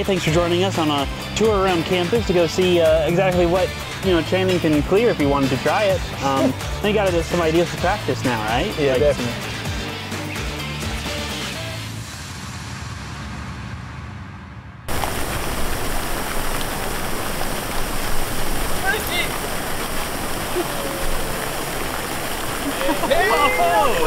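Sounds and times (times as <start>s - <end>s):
fountain water splashing: 14.9s - 24.0s.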